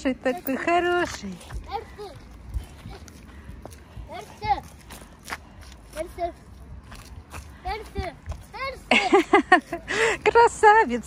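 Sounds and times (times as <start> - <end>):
footsteps on asphalt: 0.0 - 11.0.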